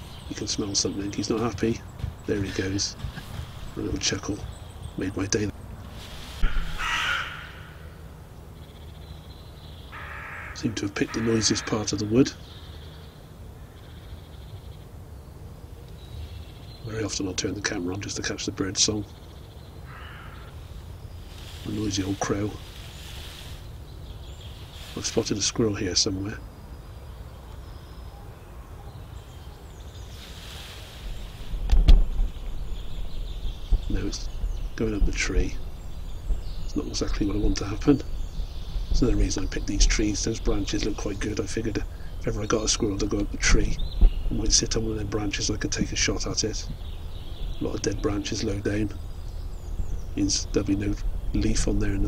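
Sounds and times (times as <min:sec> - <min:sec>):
crow cawing: 0:06.4 - 0:08.0, 0:09.9 - 0:12.1, 0:19.8 - 0:20.6
camera handling rumble: 0:31.6 - 0:32.5.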